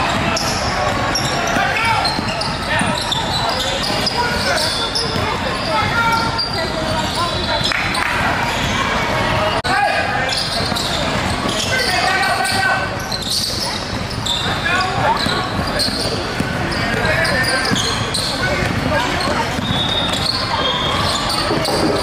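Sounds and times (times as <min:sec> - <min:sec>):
basketball bouncing on hardwood floor: 0:19.5 - 0:20.3.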